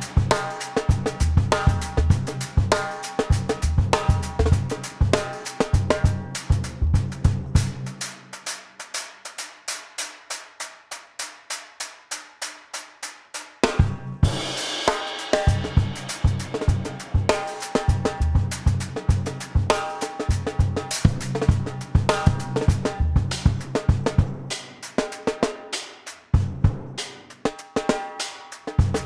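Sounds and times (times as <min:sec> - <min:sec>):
drum kit playing funk groove: 0:00.0 - 0:29.0
cymbal crash: 0:14.2 - 0:18.1.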